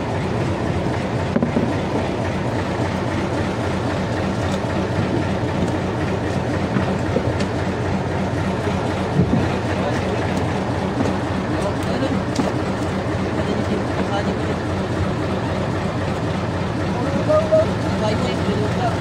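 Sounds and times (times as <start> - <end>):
boat engine rumbling: 0.0 - 19.0
knocks on boat deck: 1.3 - 2.1.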